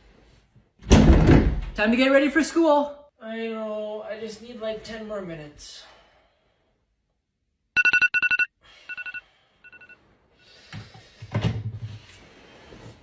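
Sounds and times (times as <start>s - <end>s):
phone alarm beeps: 7.8s - 10.0s.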